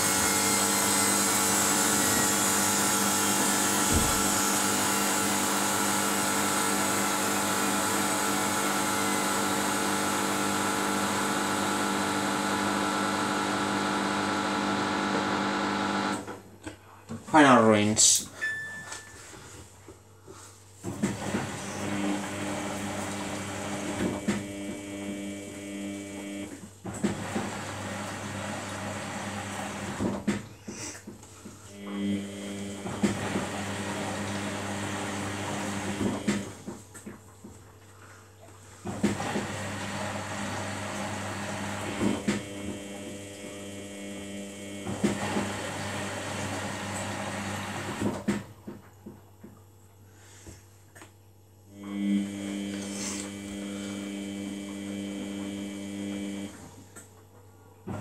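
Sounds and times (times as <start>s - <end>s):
washing machine drum motor whining: 0.0s - 16.3s, 20.9s - 30.5s, 31.7s - 36.8s, 38.8s - 48.6s, 51.8s - 56.6s
wet laundry tumbling: 0.1s - 6.8s.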